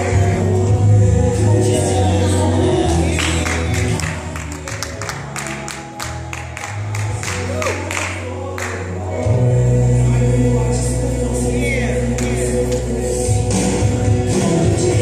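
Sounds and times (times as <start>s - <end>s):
choir singing gospel music: 0.0s - 15.0s
sustained bass notes: 0.0s - 15.0s.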